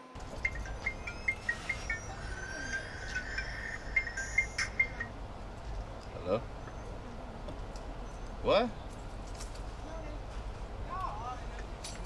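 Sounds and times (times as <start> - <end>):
low steady hum: 0.0 - 12.0
short high chirps: 0.4 - 5.1.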